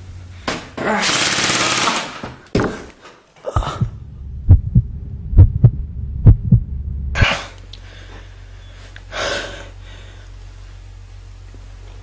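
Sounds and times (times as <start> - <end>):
heartbeat thumps: 3.6 - 7.4.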